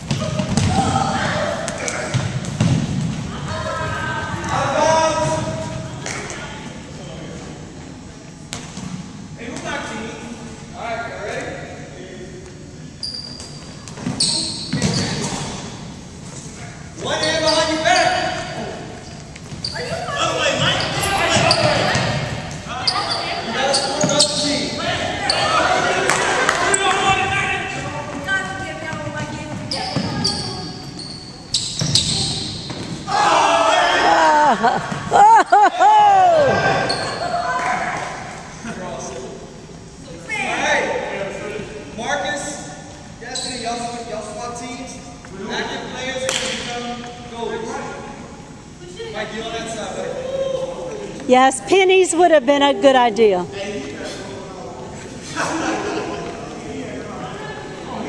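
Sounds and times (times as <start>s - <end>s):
players shouting: 33.0s - 38.1s.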